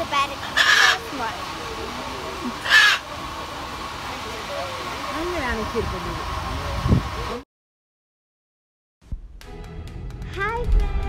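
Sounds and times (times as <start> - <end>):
parrot squawking: 0.4 - 1.3, 2.5 - 3.1.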